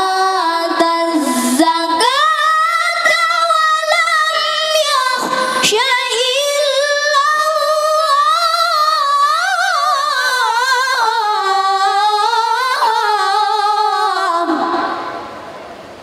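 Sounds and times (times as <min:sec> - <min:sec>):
boys reciting melodically in unison: 0:00.0 - 0:15.0.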